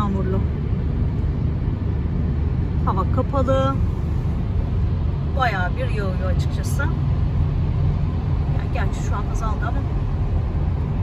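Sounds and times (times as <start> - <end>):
woman speaking: 0.0 - 0.5, 2.8 - 3.8, 5.3 - 7.0, 8.6 - 9.9
car driving rumble inside cabin: 0.0 - 11.0.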